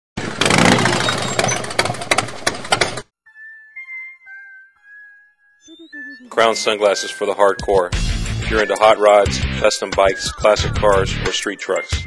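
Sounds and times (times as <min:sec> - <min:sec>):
loud engine running with pops: 0:00.2 - 0:03.0.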